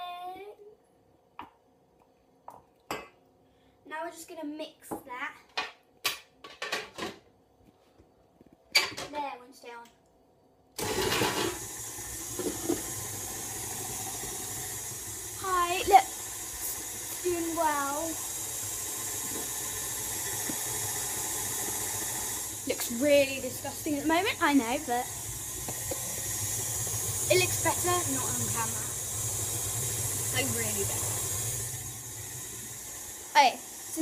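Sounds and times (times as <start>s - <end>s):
child's voice: 0.0s - 0.8s, 3.9s - 5.5s, 9.0s - 10.0s, 15.4s - 16.1s, 17.2s - 18.2s, 27.3s - 29.0s
electric stand mixer running: 10.8s - 34.0s.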